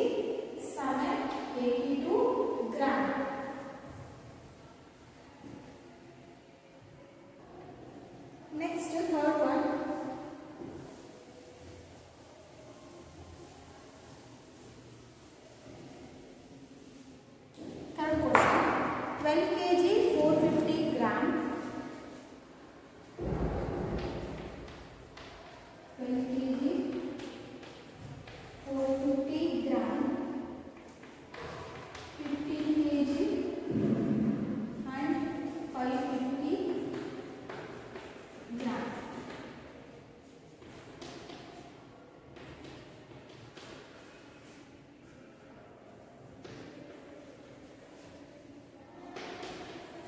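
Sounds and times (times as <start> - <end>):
chalk clicking on blackboard: 23.8 - 29.3, 30.8 - 33.6, 35.2 - 39.9, 40.5 - 44.6, 46.3 - 48.3, 49.1 - 50.0.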